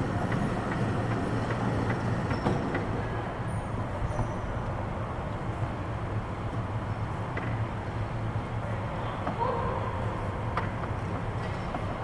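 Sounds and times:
electric go-kart humming: 0.0s - 4.0s.

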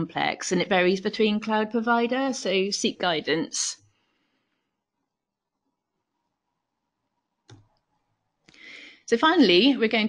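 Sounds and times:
computer mouse click: 7.4s - 7.9s.

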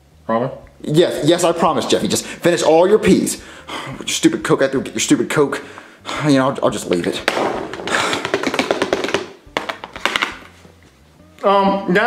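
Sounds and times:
peas pattering on plastic plate: 6.8s - 10.5s
sharp taps on plate: 6.9s - 10.4s.

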